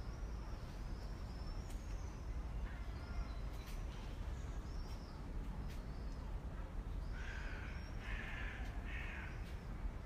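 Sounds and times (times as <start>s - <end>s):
bird harsh caw calls: 7.1s - 9.7s.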